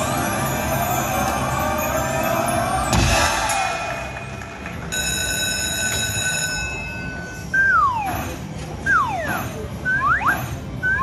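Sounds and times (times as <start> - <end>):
whistle-like electronic tone: 7.5 - 11.0.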